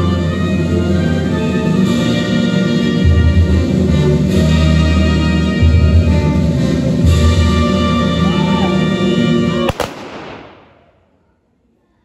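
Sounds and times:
ceremonial music: 0:00.0 - 0:10.8
rifle shots volley: 0:09.7 - 0:11.0.

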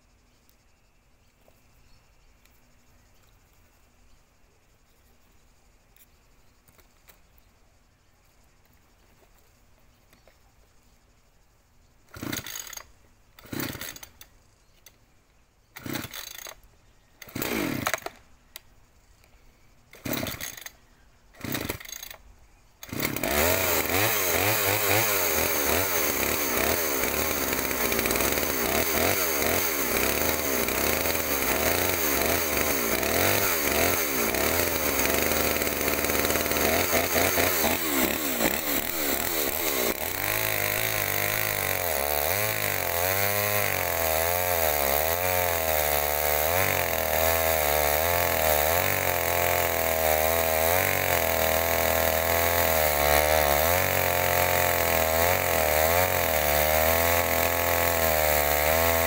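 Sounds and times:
chainsaw engine revving: 0:12.1 - 0:14.2, 0:15.8 - 0:16.6, 0:17.2 - 0:18.2, 0:19.9 - 0:22.2, 0:22.8 - 0:59.0
chainsaw cutting log: 0:12.1 - 0:14.3, 0:15.8 - 0:16.6, 0:17.2 - 0:18.2, 0:19.9 - 0:20.7, 0:21.4 - 0:22.2, 0:22.8 - 0:59.0
chainsaw pull cord bursts: 0:12.1 - 0:14.3, 0:15.8 - 0:16.6, 0:17.2 - 0:18.3, 0:19.9 - 0:22.2, 0:22.8 - 0:59.0.

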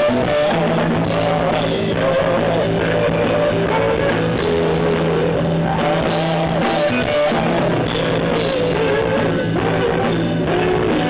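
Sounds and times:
lead guitar bending in pitch: 0:00.0 - 0:11.0
live rock band playing: 0:00.0 - 0:11.0.

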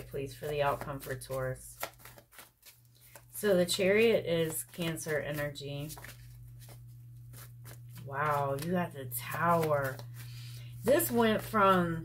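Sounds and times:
cards rubbing and sliding: 0:00.4 - 0:12.0
steady low hum: 0:02.8 - 0:12.0.

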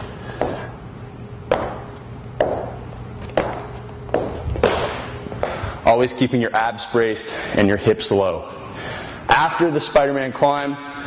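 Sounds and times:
feet thudding on wooden floor: 0:01.5 - 0:05.6.

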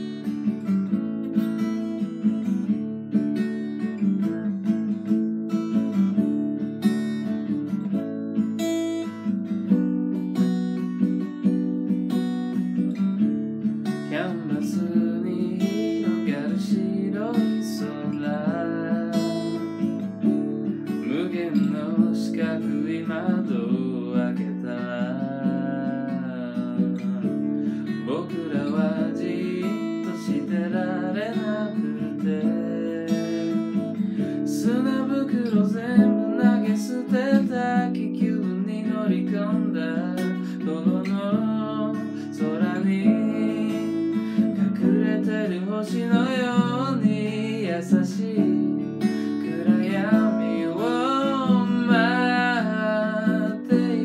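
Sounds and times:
acoustic guitar strumming: 0:00.0 - 0:54.0
man singing: 0:13.8 - 0:54.0.

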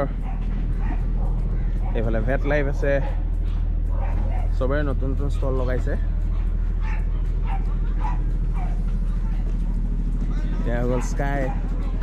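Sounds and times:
faint voices: 0:00.0 - 0:12.0
low hum: 0:00.0 - 0:12.0
dog barking: 0:00.2 - 0:02.2, 0:03.0 - 0:04.6, 0:06.2 - 0:09.6, 0:10.8 - 0:11.9.

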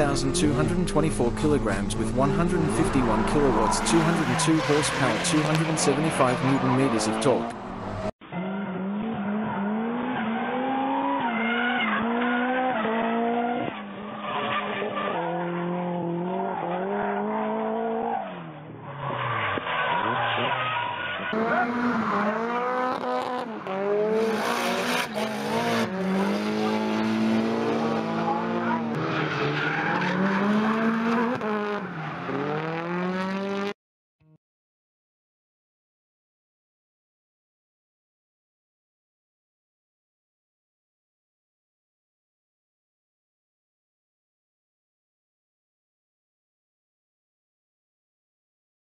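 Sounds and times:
car engine revving hard: 0:00.0 - 0:14.1, 0:21.3 - 0:33.8.

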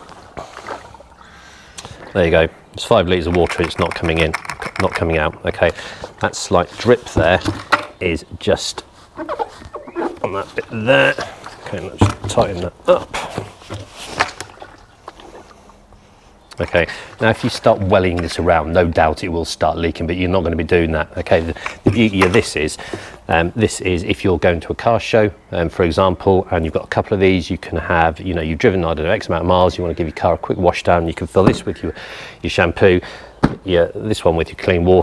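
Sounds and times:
water sloshing in plastic bucket: 0:00.0 - 0:02.3, 0:03.1 - 0:08.0, 0:09.1 - 0:15.8, 0:21.3 - 0:23.2
sharp plastic knocks: 0:07.2 - 0:08.0, 0:31.4 - 0:31.8, 0:33.4 - 0:33.7.

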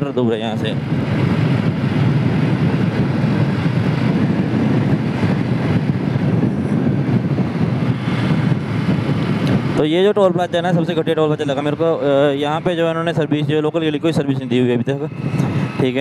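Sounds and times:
motorcycle engine at steady speed: 0:00.0 - 0:16.0
wind rush: 0:00.0 - 0:16.0.

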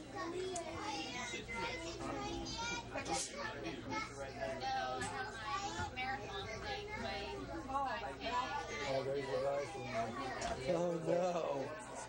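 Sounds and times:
passengers chattering: 0:00.0 - 0:12.0.

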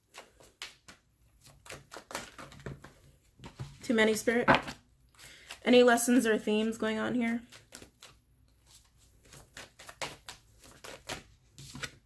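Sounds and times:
cards being shuffled: 0:00.0 - 0:05.8, 0:07.3 - 0:12.0.

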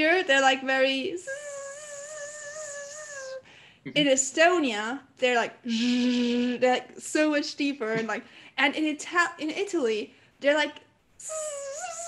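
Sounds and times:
woman imitating mosquito whine: 0:01.2 - 0:03.4, 0:11.2 - 0:12.0.

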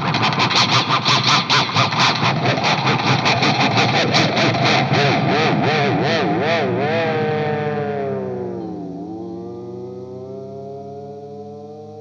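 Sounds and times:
distorted electric guitar picking: 0:03.8 - 0:10.1.

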